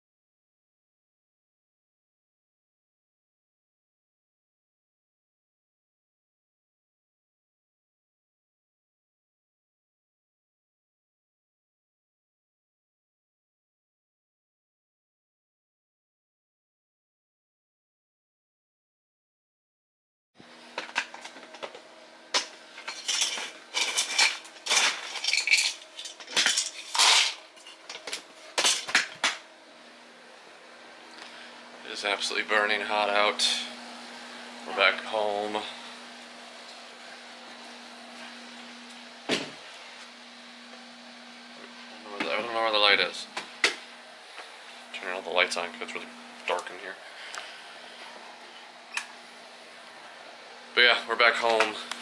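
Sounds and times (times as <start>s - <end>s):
low electrical hum: 20.4s - 52.0s
hard objects clinking and clattering: 22.4s - 29.4s.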